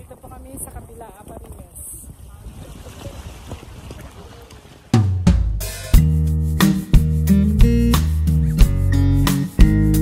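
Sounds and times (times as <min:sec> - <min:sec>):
wind buffeting microphone: 0:00.0 - 0:05.0.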